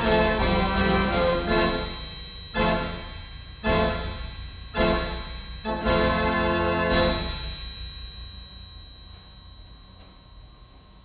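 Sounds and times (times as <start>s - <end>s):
carousel band organ waltz: 0.0s - 7.5s
bright struck clang: 0.0s - 10.4s.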